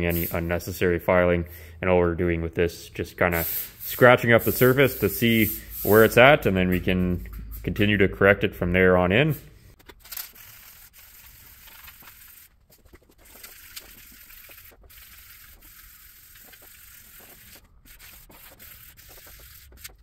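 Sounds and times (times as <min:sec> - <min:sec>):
marker scribbling on steel: 0:03.4 - 0:06.2, 0:10.4 - 0:20.0.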